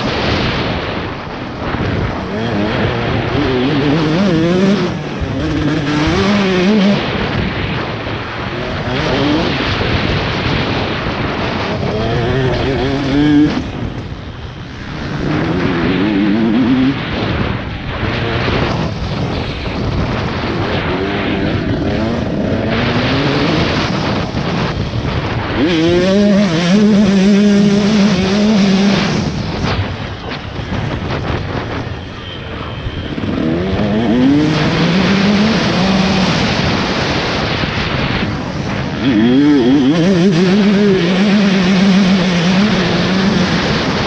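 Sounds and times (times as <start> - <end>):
motocross engine revving: 1.4 - 29.8, 33.0 - 44.0.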